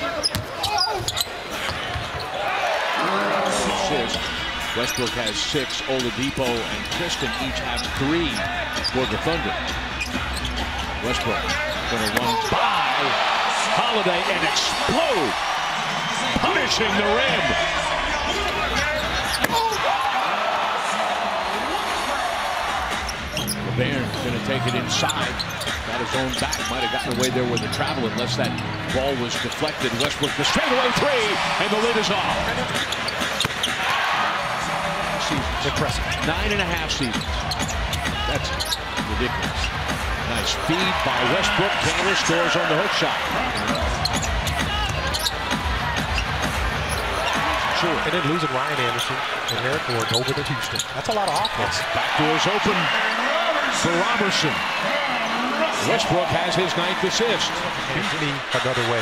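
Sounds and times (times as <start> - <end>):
sneakers squeaking: 0.0 - 13.5, 15.6 - 19.9, 22.8 - 30.8, 32.0 - 34.2, 35.2 - 52.2
crowd din: 0.0 - 59.0.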